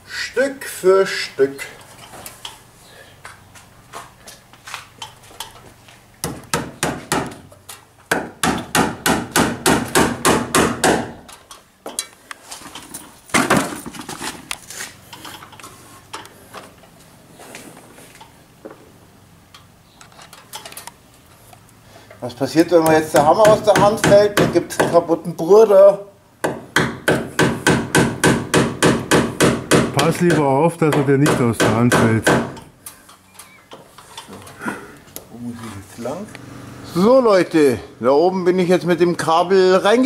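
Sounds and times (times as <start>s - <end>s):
hammer striking wooden beam: 6.2s - 7.4s, 8.1s - 11.2s, 22.8s - 25.0s, 26.4s - 32.7s.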